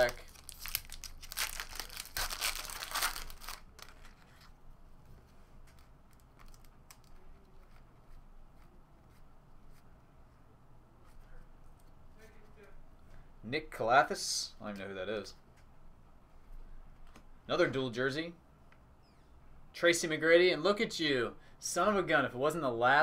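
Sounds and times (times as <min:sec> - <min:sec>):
foil wrapper tearing and crinkling: 0:00.0 - 0:04.2.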